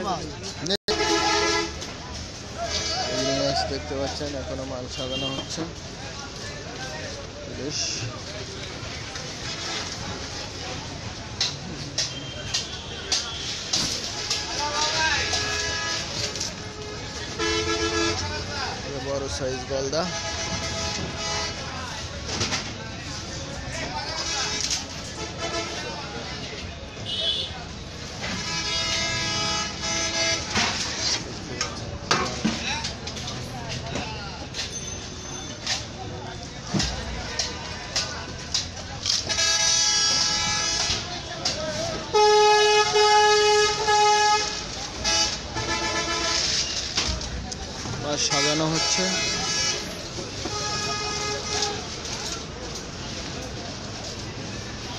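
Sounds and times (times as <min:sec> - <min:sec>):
market chatter: 0:00.0 - 0:54.9
traffic noise: 0:00.0 - 0:54.9
vehicle horn blare: 0:00.9 - 0:01.8, 0:05.0 - 0:05.6, 0:15.1 - 0:18.3, 0:27.0 - 0:27.5, 0:28.3 - 0:30.7, 0:39.3 - 0:41.1, 0:42.1 - 0:46.8, 0:48.4 - 0:51.8.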